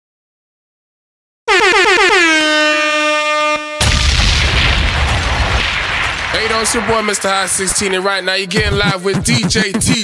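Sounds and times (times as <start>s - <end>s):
air horn blasts: 1.5s - 3.9s
booming hit with noise burst: 3.8s - 8.8s.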